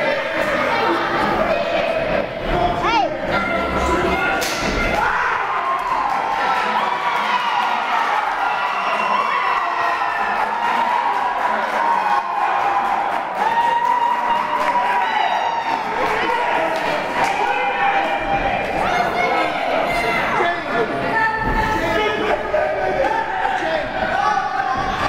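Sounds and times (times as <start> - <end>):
crowd shouting and cheering: 0.0 - 25.0.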